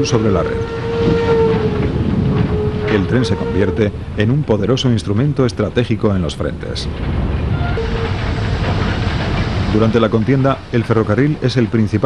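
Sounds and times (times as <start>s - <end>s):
moving train rumble: 0.0s - 12.0s
steam train whistle: 0.3s - 1.9s, 2.5s - 3.9s.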